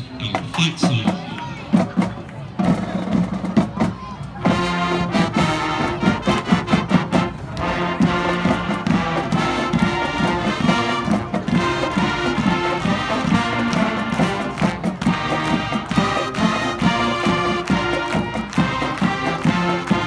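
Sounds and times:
marching band playing: 0:00.0 - 0:20.0
drum strokes: 0:00.2 - 0:20.0.

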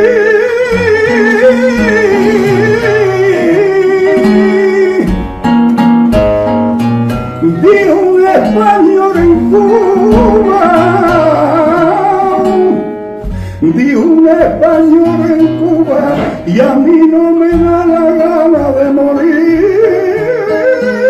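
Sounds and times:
man singing flamenco: 0:00.0 - 0:06.4, 0:07.2 - 0:21.0
acoustic guitar: 0:00.0 - 0:21.0.

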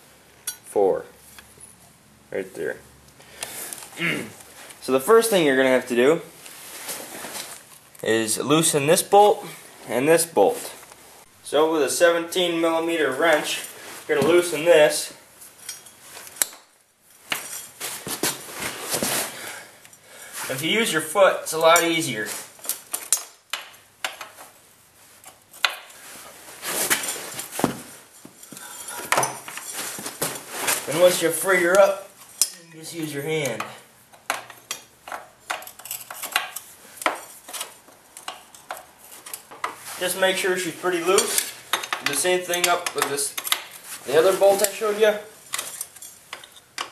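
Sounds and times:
wrench clinking on metal: 0:00.4 - 0:00.7, 0:15.6 - 0:16.7, 0:22.6 - 0:24.4, 0:31.7 - 0:39.5, 0:41.0 - 0:43.7, 0:45.4 - 0:46.9
metal clicks and clinks: 0:33.4 - 0:37.3, 0:45.5 - 0:46.9.

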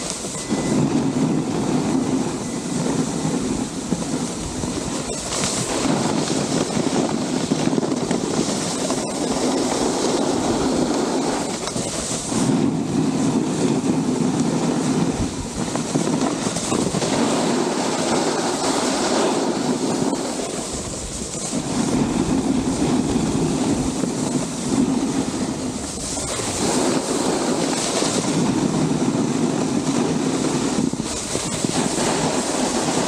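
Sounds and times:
snowboard scraping over snow: 0:00.0 - 0:33.0
wind on microphone: 0:00.0 - 0:33.0.

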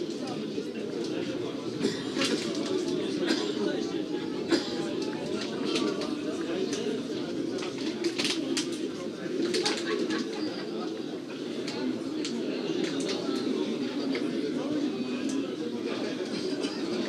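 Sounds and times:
faint distant voices: 0:00.0 - 0:17.0
low background murmur: 0:00.0 - 0:17.0.

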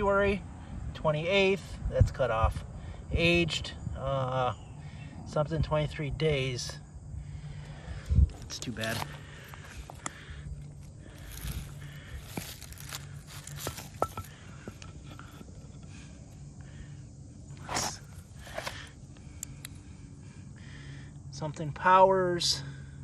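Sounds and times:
footsteps rustling through grass: 0:11.1 - 0:14.0.

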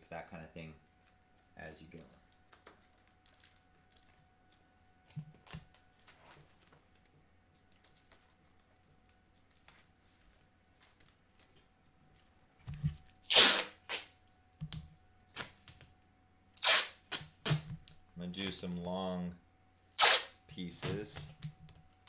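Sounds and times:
masking tape ripping: 0:13.2 - 0:14.2, 0:16.6 - 0:17.8, 0:19.9 - 0:21.2.

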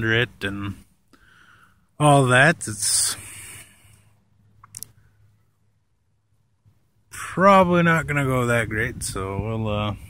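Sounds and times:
man breathing out: 0:01.1 - 0:01.9.

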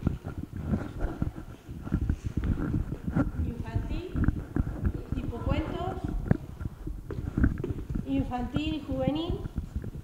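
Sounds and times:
person speaking: 0:03.4 - 0:06.4
camera handling knocks and rumble: 0:06.1 - 0:08.0.

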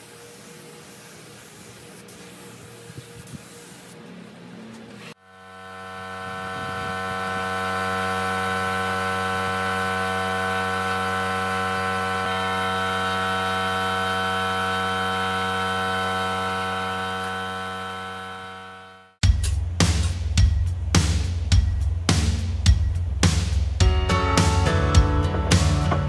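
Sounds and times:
electric motor hum: 0:05.2 - 0:19.2.

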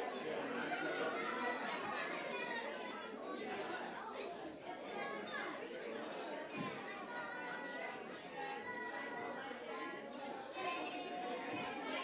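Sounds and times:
children's voices: 0:00.0 - 0:12.0
crowd chatting: 0:00.0 - 0:12.0.

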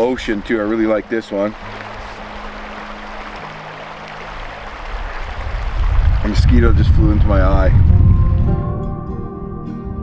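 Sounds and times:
creek rushing over rocks: 0:00.0 - 0:08.0
low rumble: 0:05.4 - 0:08.8
faint low music notes: 0:06.8 - 0:10.0.

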